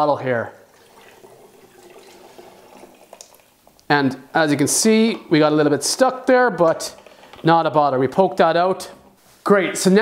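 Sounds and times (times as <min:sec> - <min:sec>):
oil trickling through funnel: 0:00.6 - 0:03.9.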